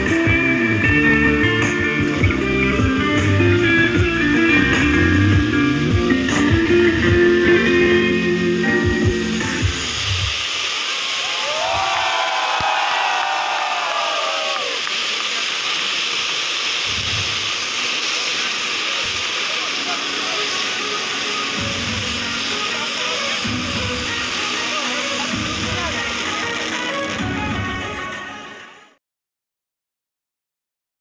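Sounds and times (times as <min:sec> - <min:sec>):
guitar music: 0:00.0 - 0:10.0, 0:20.0 - 0:28.6
spark fountains hissing: 0:00.0 - 0:29.0
burst of voices: 0:11.0 - 0:28.0.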